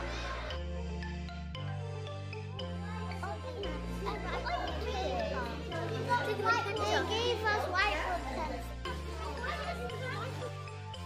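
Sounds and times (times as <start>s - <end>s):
young children chattering: 0.0s - 0.7s, 2.6s - 11.0s
background music with bass line: 0.0s - 11.0s.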